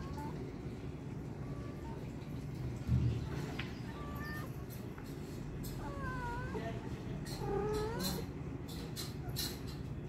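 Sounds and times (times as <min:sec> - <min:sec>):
kitten mewing: 0:05.8 - 0:08.4.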